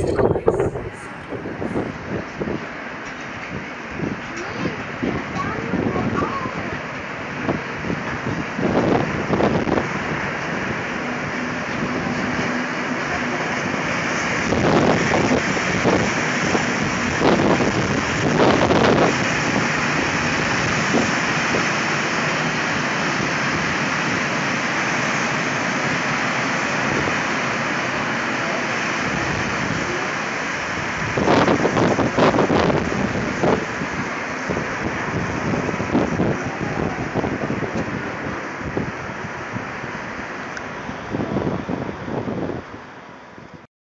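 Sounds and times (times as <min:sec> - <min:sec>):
train clattering: 0:00.0 - 0:38.6
diesel locomotive engines: 0:00.0 - 0:43.6
train wheels rumbling on rail: 0:00.0 - 0:43.6.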